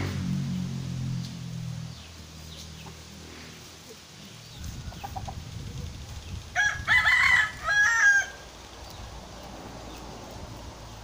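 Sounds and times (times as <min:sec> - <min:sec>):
rooster crowing: 0:06.5 - 0:08.5.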